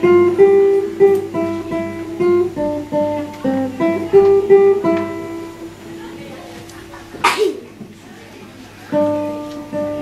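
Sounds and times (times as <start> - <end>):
plucked acoustic guitar: 0.0 - 10.0
person sneezing: 7.2 - 7.7.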